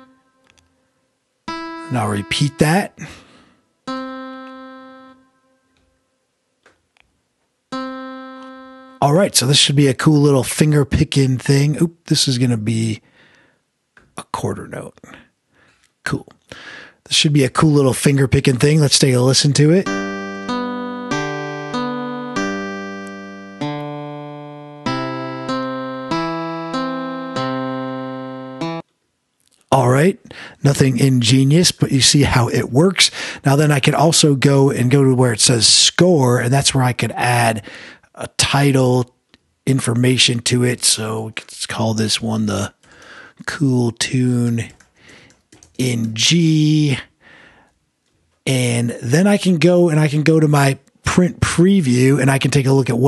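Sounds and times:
synthesized guitar note: 0.0 - 0.4, 1.5 - 5.6, 7.7 - 9.0, 19.8 - 28.8
synthesized fingerpicked guitar: 1.5 - 2.9.

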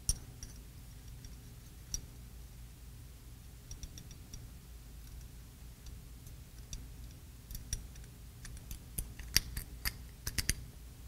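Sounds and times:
small steel parts clicking: 5.0 - 10.6.

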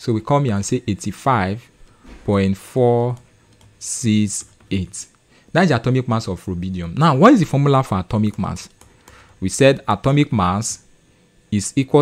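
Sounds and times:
man speaking: 0.0 - 8.8, 9.4 - 10.9, 11.5 - 12.0.

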